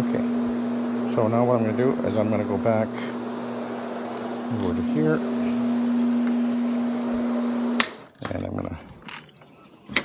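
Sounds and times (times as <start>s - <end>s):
floor scrubber motor humming: 0.0s - 8.1s.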